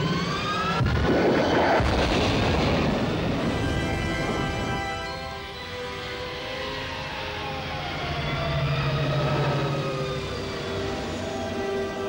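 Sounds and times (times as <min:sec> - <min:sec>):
orchestral film score: 0:00.0 - 0:12.0.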